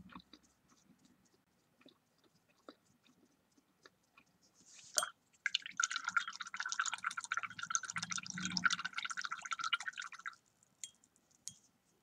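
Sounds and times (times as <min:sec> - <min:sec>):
paintbrush swishing in water: 0:04.2 - 0:05.1.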